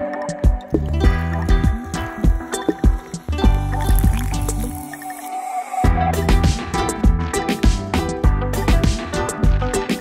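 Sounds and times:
background music with steady beat: 0:00.0 - 0:05.2, 0:05.8 - 0:10.0
drink fizzing: 0:01.8 - 0:05.8
fizzy water pouring into glass: 0:02.2 - 0:05.6.

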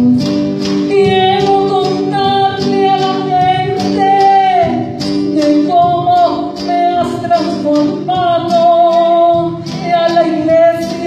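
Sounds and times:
church praise band playing: 0:00.0 - 0:11.0.

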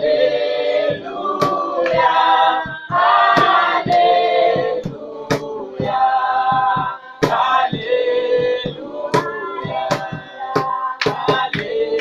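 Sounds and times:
choir singing in harmony: 0:00.0 - 0:12.0
sharp percussive hits: 0:00.9 - 0:12.0.

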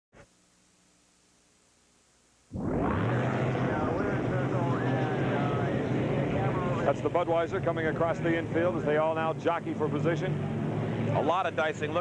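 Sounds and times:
boat engines droning: 0:02.6 - 0:12.0.

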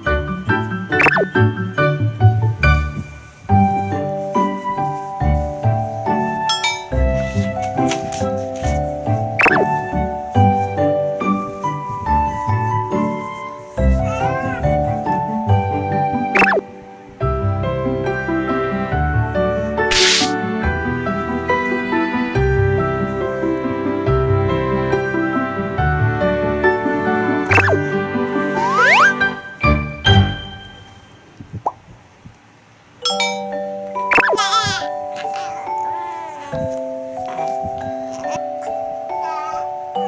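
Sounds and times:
gentle background music: 0:00.0 - 0:31.8, 0:33.0 - 0:40.0
baby cooing: 0:14.0 - 0:14.7, 0:27.7 - 0:29.2, 0:34.1 - 0:40.0
bright jingle with bell notes: 0:29.9 - 0:31.4, 0:33.0 - 0:36.1.

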